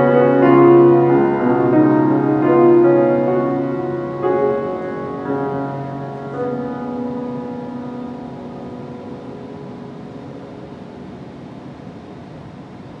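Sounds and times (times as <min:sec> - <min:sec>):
faint room hiss: 0:00.0 - 0:13.0
piano chord sustaining: 0:00.0 - 0:13.0.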